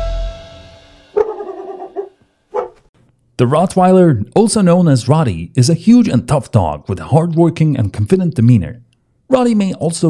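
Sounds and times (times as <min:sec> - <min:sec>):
dog barking: 0:01.1 - 0:02.9.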